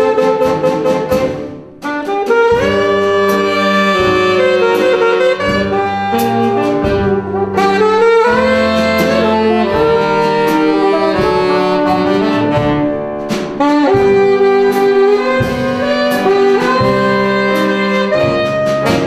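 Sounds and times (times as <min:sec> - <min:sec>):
saxophones and wind band jazz: 0:00.0 - 0:19.0.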